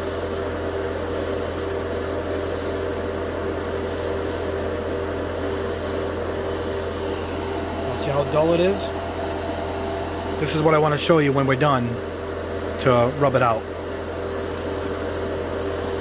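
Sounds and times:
fan humming: 0:00.0 - 0:16.0
airbrush spraying hiss: 0:03.6 - 0:04.6, 0:13.9 - 0:16.0.

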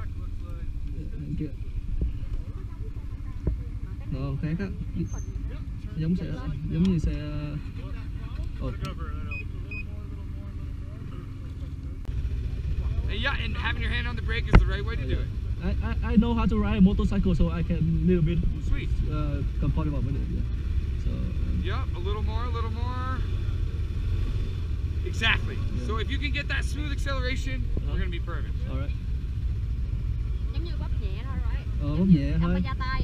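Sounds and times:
snowmobile engines idling: 0:00.0 - 0:24.0, 0:24.8 - 0:33.0.

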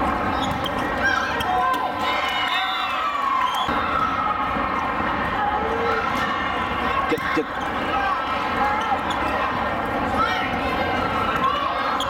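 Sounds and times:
hubbub of many voices: 0:00.0 - 0:12.0
sneakers squeaking on court: 0:00.1 - 0:01.9.

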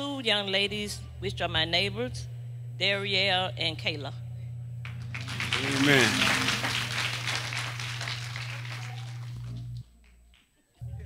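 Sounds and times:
steady low hum: 0:00.0 - 0:11.0
congregation applauding: 0:04.9 - 0:09.8.

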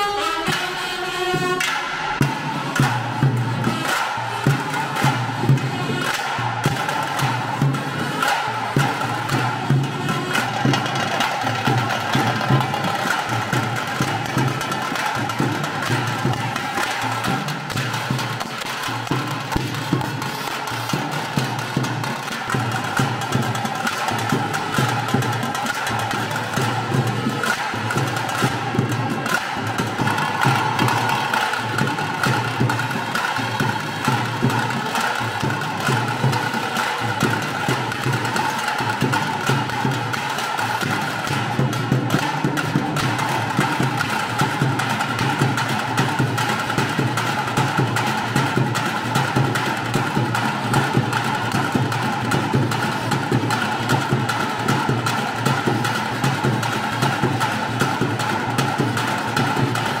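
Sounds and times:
rapid stick drumming: 0:00.1 - 0:46.6.

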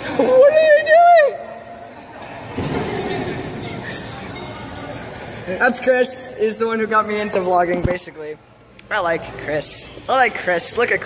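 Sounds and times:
person yelling: 0:00.2 - 0:01.5.

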